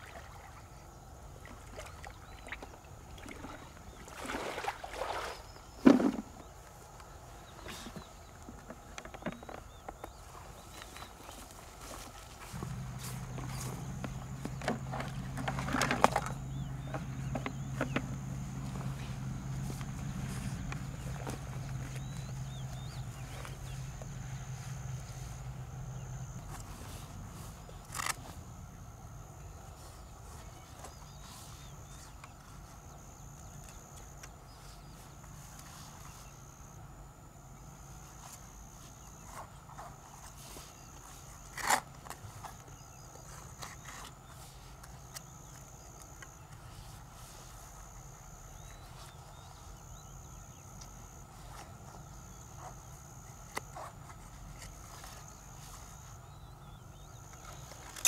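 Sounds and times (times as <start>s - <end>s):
steady low hum: 9.7s - 58.0s
footsteps in rubber boots on grass: 10.1s - 25.6s.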